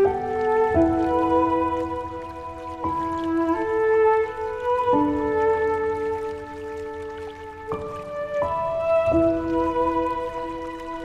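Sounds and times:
slow gentle piano music: 0.0 - 11.0.

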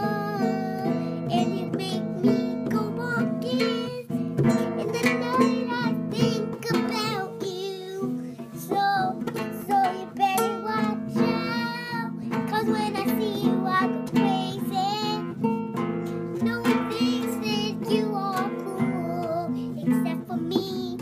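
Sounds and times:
child singing: 0.0 - 15.4, 16.3 - 21.0
acoustic guitar strumming: 0.0 - 21.0.

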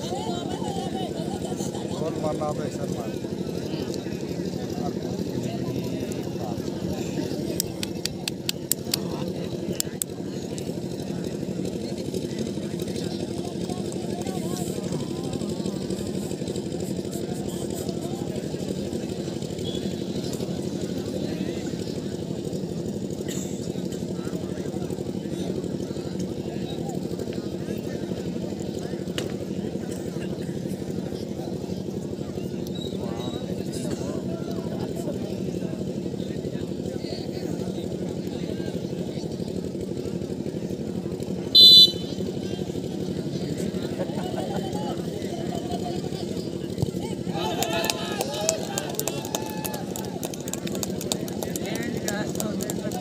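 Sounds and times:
crowd chattering: 0.0 - 53.0.

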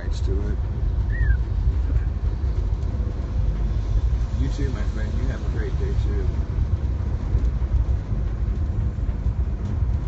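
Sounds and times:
vehicle engine and road rumble: 0.0 - 10.0.

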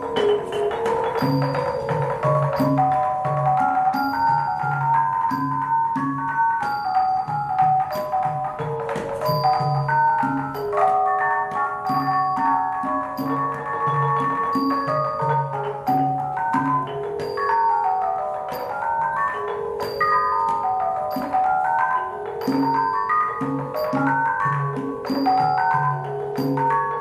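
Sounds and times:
gong-chimes played with mallets: 0.0 - 27.0
hand drum low pattern: 0.0 - 27.0
small hand cymbals ringing: 0.0 - 27.0.

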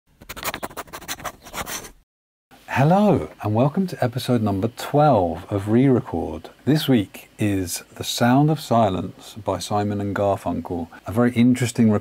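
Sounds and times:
scratching and rustling strokes: 0.2 - 2.0.

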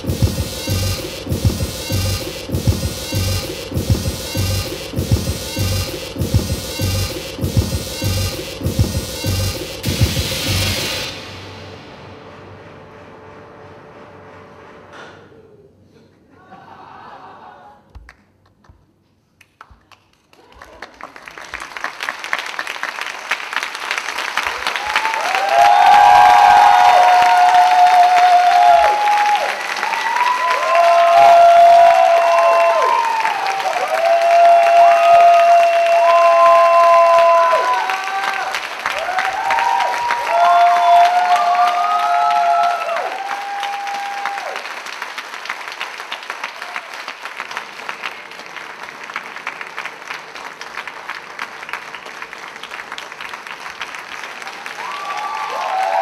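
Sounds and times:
audience applauding: 0.0 - 11.2, 19.4 - 56.0
crowd calling out: 24.8 - 44.6.

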